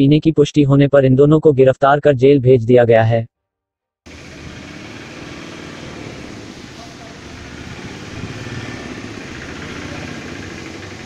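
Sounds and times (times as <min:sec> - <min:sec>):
outdoor low rumble: 0:04.1 - 0:11.0.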